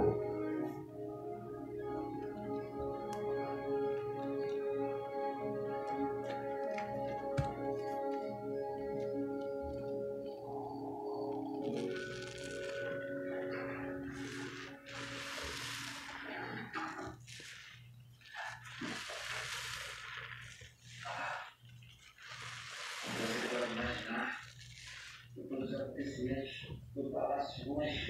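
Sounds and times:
sponge squelching in soap foam: 0:11.7 - 0:26.0.

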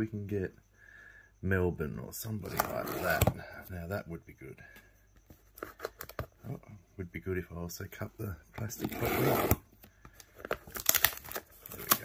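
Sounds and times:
foil wrapper rustling: 0:10.4 - 0:12.0.

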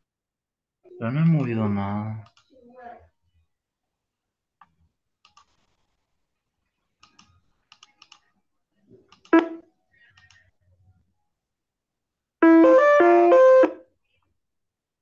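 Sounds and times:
keyboard typing clicks: 0:07.0 - 0:08.3, 0:09.1 - 0:10.4.

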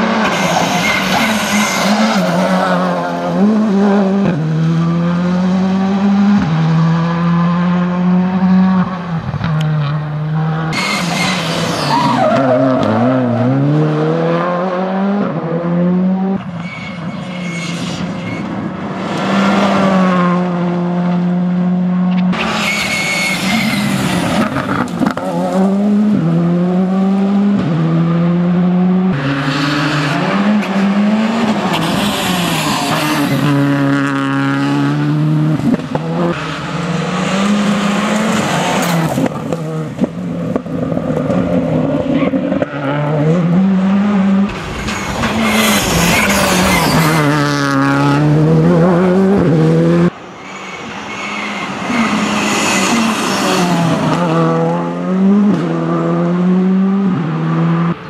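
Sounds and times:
rally car engine revving: 0:00.0 - 0:50.2, 0:50.8 - 0:58.0.

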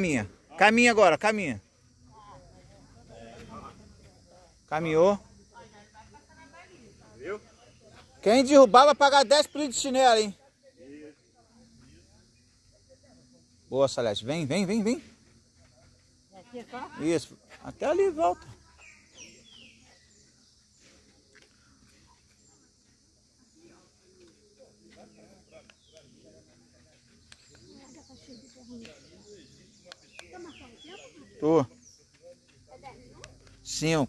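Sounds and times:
voices talking: 0:00.0 - 0:34.0
high bird chirps: 0:18.7 - 0:20.4.

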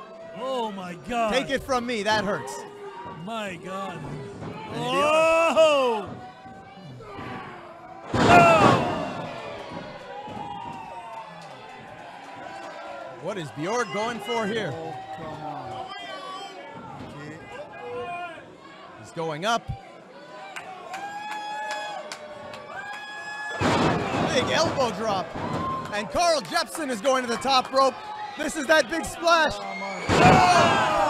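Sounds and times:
crowd shouting: 0:00.0 - 0:19.0, 0:19.6 - 0:31.0
crowd erupting: 0:07.0 - 0:11.5, 0:23.4 - 0:31.0
crowd clapping: 0:09.1 - 0:15.9, 0:20.5 - 0:23.6, 0:25.8 - 0:27.3.

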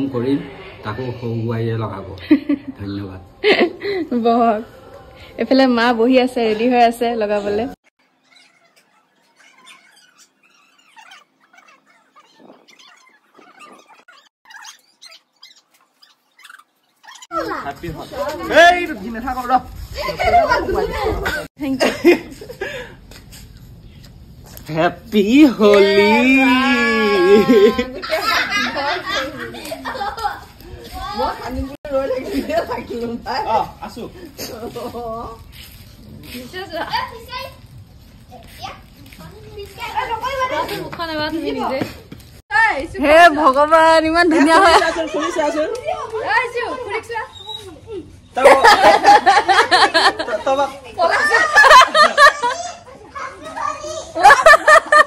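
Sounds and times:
children chattering and calling out: 0:06.5 - 0:19.1, 0:19.7 - 0:21.5, 0:25.7 - 0:55.0
small animal squeaking: 0:08.2 - 0:17.3, 0:47.3 - 0:47.8.

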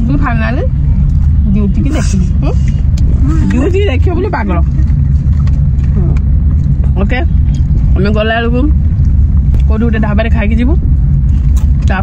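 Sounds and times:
woman speaking: 0:00.0 - 0:00.8, 0:01.4 - 0:04.8, 0:06.9 - 0:08.8, 0:09.6 - 0:10.9
car engine and road noise: 0:00.0 - 0:12.0.

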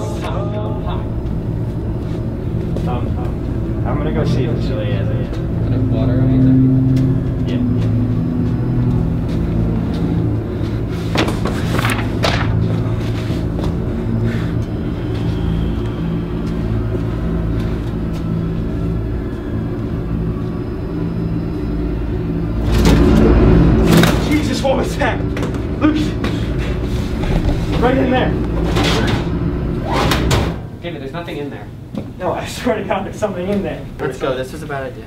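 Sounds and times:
film music: 0:00.0 - 0:30.8
low droning rumble: 0:00.0 - 0:31.9.

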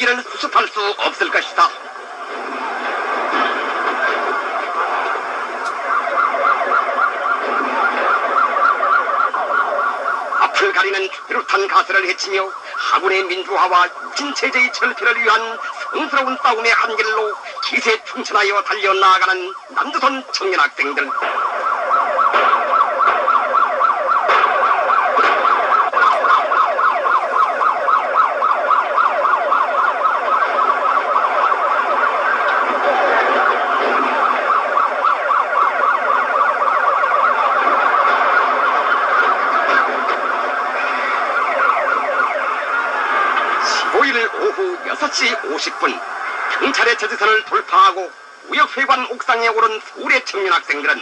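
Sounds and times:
siren wailing up and down: 0:00.0 - 0:51.0.

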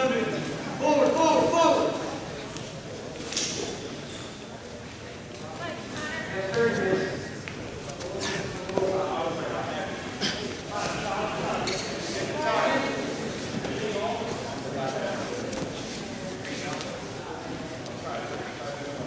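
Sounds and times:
voices calling out in a gym: 0:00.0 - 0:19.0.

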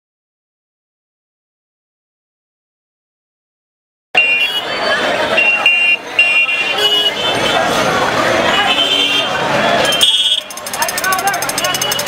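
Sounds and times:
busy street traffic: 0:04.2 - 0:12.0
crowd chatter: 0:04.2 - 0:12.0
vehicle horns beeping: 0:04.2 - 0:12.0.

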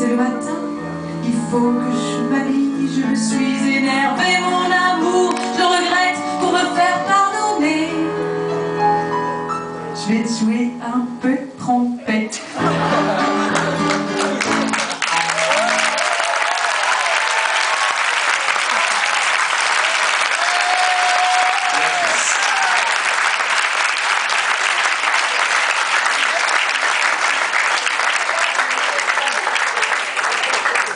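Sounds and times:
musical notes: 0:12.6 - 0:16.0
audience applauding: 0:12.7 - 0:30.9.

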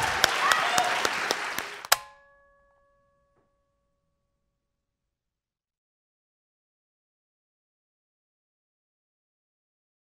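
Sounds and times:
audience applause: 0:00.0 - 0:02.0.

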